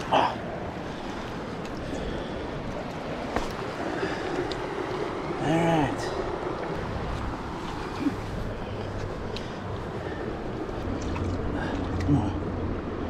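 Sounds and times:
stream running over rocks: 0.0 - 13.0.

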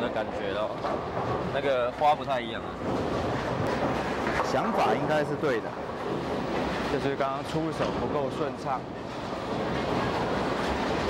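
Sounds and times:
bowling ball rolling: 2.6 - 8.4.

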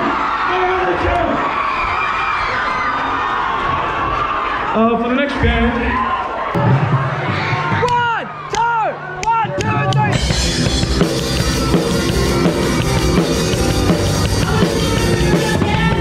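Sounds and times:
rock band playing: 6.6 - 16.0.

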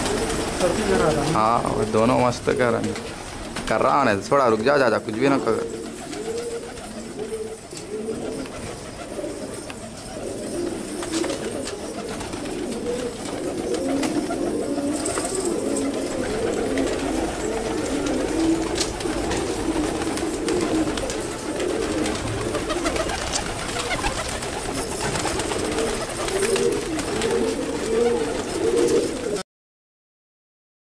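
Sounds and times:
pigeons cooing: 0.0 - 29.4.

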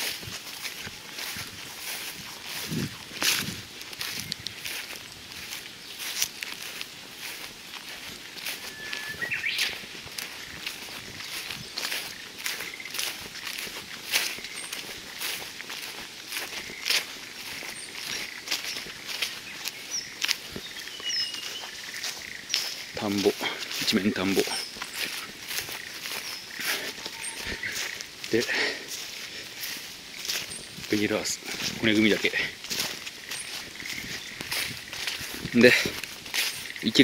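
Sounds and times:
footsteps through long grass: 0.0 - 37.0
faint high chirps: 26.2 - 28.0.

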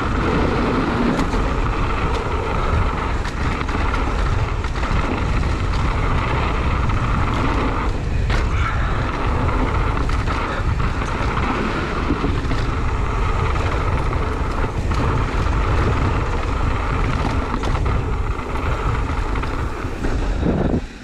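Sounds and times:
bike rattling and clicking: 0.0 - 21.0
tyres rolling over dirt: 0.0 - 21.0
wind buffeting microphone: 0.0 - 21.0.

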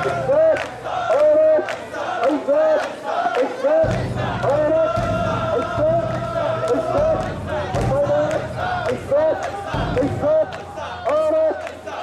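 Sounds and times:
crowd shouting rhythmic chant: 0.0 - 12.0.

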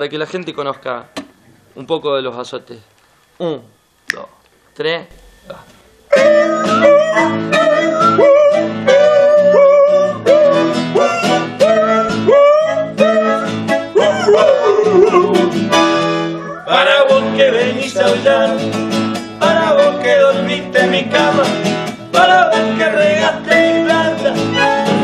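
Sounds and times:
bandoneon playing: 5.1 - 16.6, 22.2 - 25.0
man singing: 6.1 - 15.8, 16.6 - 18.8, 19.4 - 25.0
nylon-string acoustic guitar: 6.1 - 25.0.

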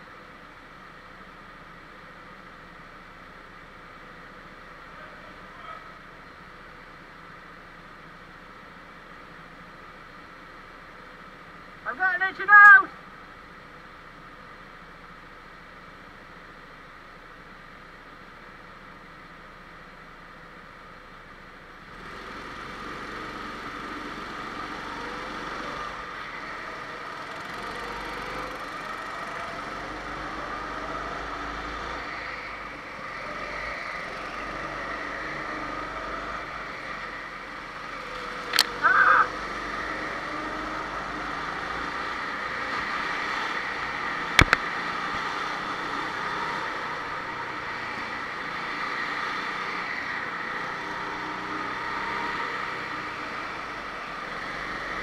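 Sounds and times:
go-kart engine revving: 21.9 - 55.0.

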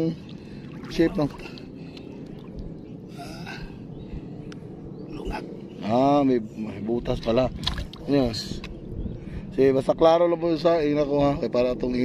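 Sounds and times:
seawater sloshing from wading: 0.0 - 2.8.

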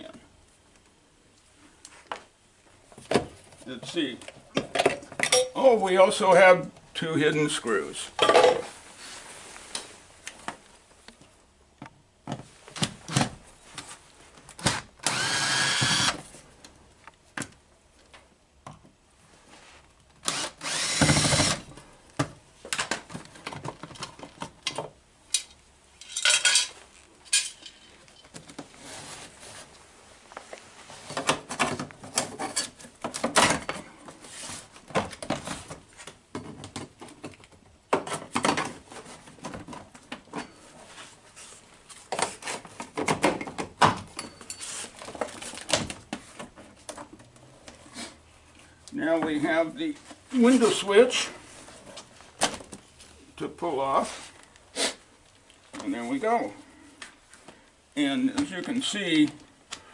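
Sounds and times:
cordless drill whirring: 14.7 - 16.2, 20.2 - 21.7.

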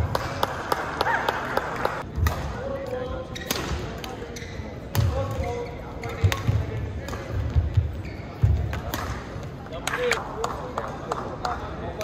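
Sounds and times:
shoe squeaks on court: 4.2 - 6.4, 7.9 - 8.6.

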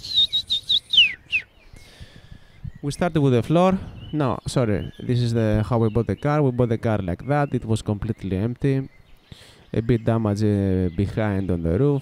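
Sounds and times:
bird singing high chirps: 0.0 - 12.0.

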